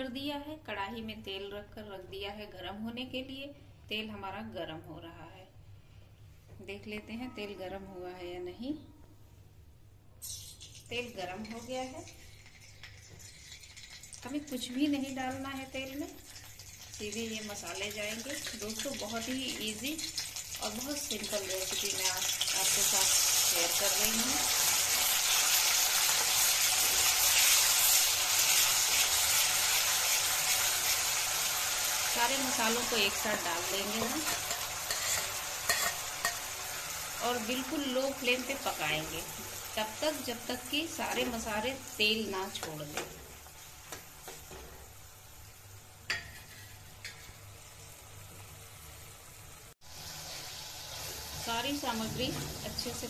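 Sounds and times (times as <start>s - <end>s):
paste sizzling in hot oil: 10.2s - 42.7s, 43.4s - 53.0s
metal spatula stirring: 33.1s - 36.5s.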